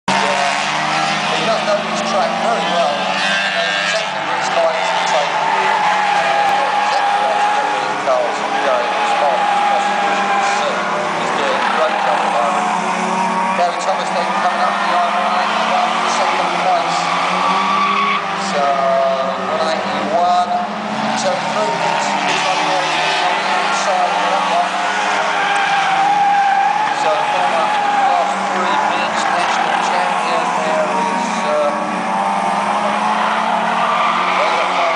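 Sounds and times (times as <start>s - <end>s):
race car engines revving: 0.0s - 34.9s.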